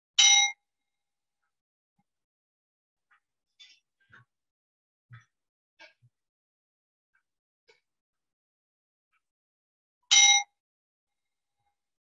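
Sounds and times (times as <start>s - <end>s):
bowl bell ding: 10.1s - 10.5s.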